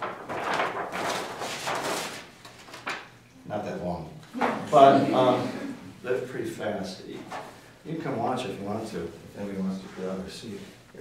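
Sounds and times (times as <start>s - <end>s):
large paper sheets rustling: 0.0s - 3.2s, 7.1s - 7.7s.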